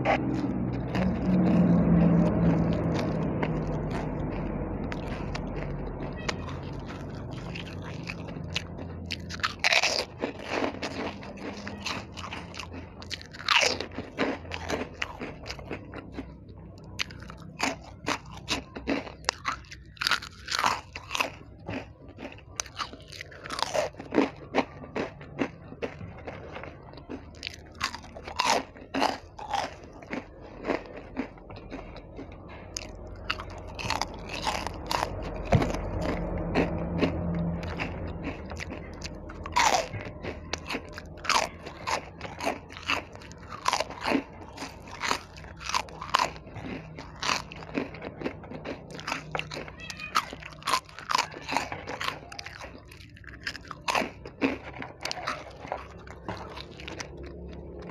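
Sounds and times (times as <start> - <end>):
crunching crispy snacks: 0.0 - 57.9
soft chewing: 0.0 - 57.9.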